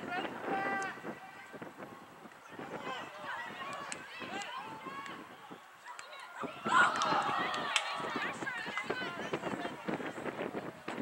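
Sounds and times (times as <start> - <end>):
loud shout: 2.6 - 9.7
people calling out: 2.7 - 9.7.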